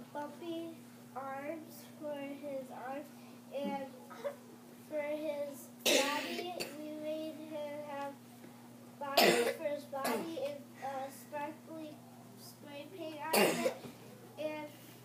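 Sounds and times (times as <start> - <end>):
steady low hum: 0.0 - 15.0
person coughing: 9.2 - 10.3, 13.3 - 13.9.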